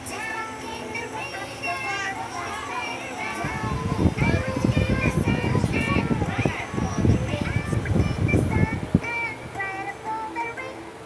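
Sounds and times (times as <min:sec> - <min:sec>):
toddlers babbling: 0:00.0 - 0:07.7.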